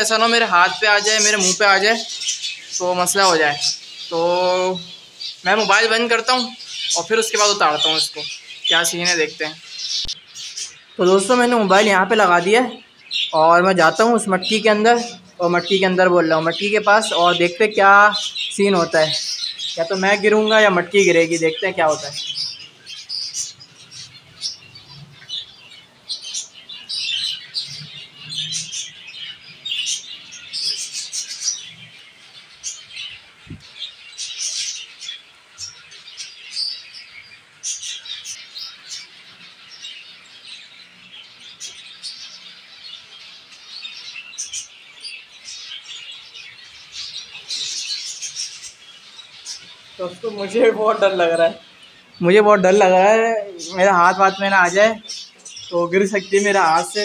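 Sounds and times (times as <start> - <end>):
finches chirping and calling: 0.0 - 57.0.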